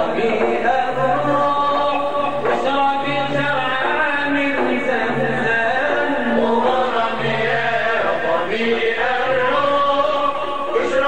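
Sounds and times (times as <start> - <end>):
men chanting a religious song: 0.0 - 11.0.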